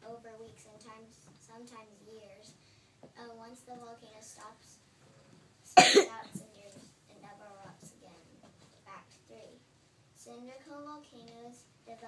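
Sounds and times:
person coughing: 5.8 - 6.2.

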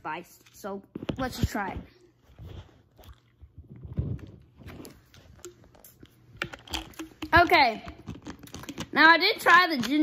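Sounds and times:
plastic bottle knocks and clicks: 6.4 - 8.9.

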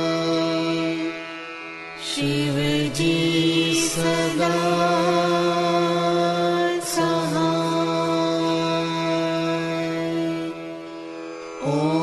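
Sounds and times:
voices chanting a mantra: 0.0 - 1.4, 2.0 - 10.8, 11.6 - 12.0
steady held drone: 0.0 - 12.0.

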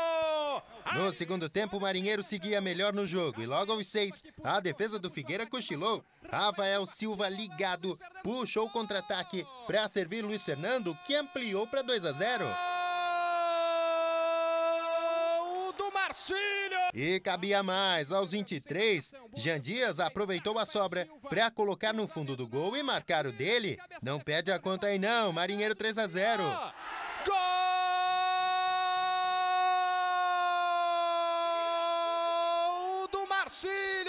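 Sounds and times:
sportscaster's long goal cry: 0.0 - 1.2, 8.4 - 16.9, 26.3 - 34.0.

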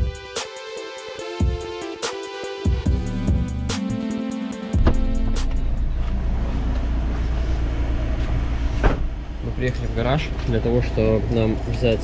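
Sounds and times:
car engine idling: 2.9 - 12.0.

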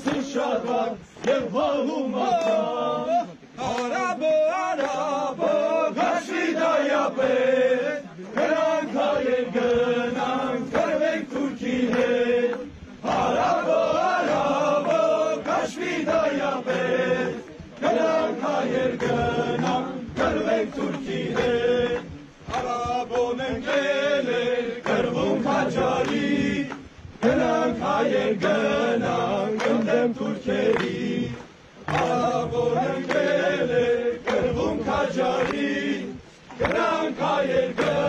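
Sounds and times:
men singing folk song in unison: 0.0 - 38.0.

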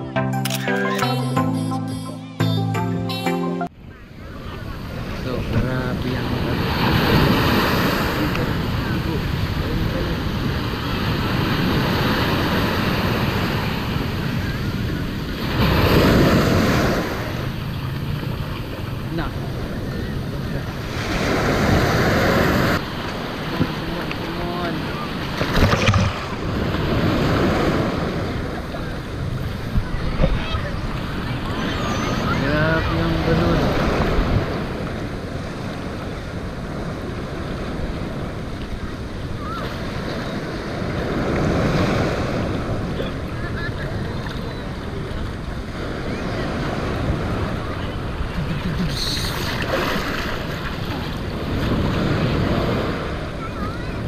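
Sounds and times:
surf washing in: 4.1 - 54.0.

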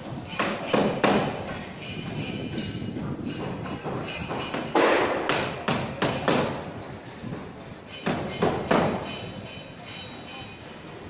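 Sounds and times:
construction site noise: 0.0 - 11.0
loud ringing knocks: 0.1 - 6.6, 7.9 - 10.2.

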